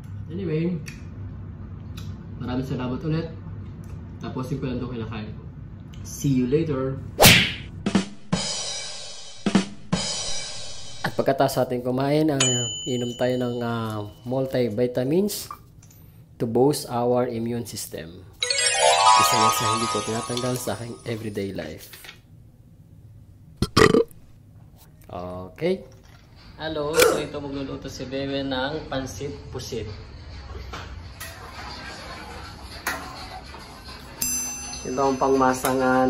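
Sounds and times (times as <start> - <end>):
drum hits with cymbals: 7.7 - 11.2
man burping loudly: 23.6 - 24.2.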